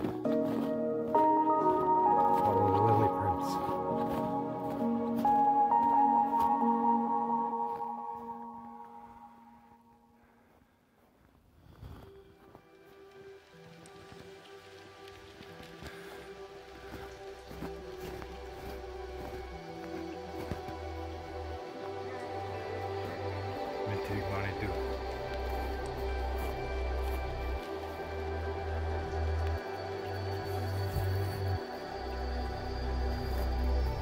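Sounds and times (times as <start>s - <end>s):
background music: 0.0s - 10.4s, 11.8s - 34.0s.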